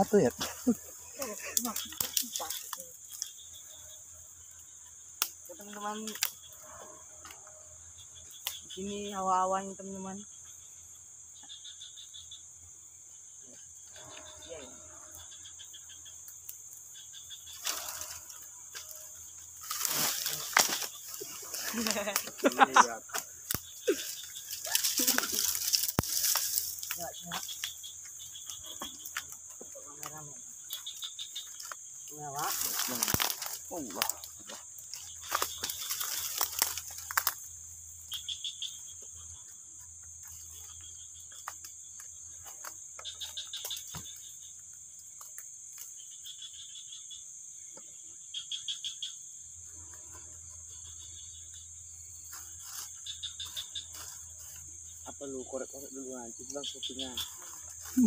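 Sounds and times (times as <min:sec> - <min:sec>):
bamboo leaves rustling: 0:00.0 - 0:03.5, 0:17.5 - 0:38.2, 0:52.1 - 0:58.0
crickets chirping: 0:00.0 - 0:58.0
dry leaf litter crackling: 0:17.5 - 0:19.0, 0:19.6 - 0:27.9, 0:30.0 - 0:37.6.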